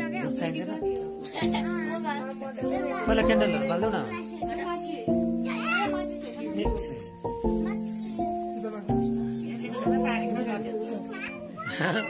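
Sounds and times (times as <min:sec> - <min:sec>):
held musical chord: 0:00.0 - 0:11.6
children chattering: 0:00.0 - 0:12.0.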